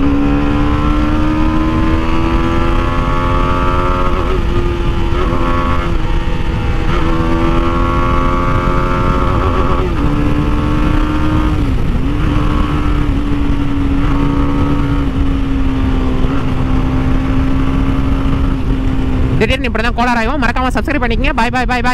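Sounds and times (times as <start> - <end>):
motorcycle engine running: 0.0 - 21.9
wind noise on microphone: 0.0 - 21.9.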